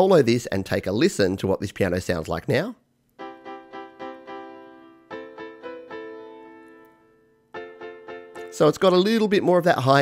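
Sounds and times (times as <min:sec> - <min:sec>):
solo piano notes: 0:03.2 - 0:08.6.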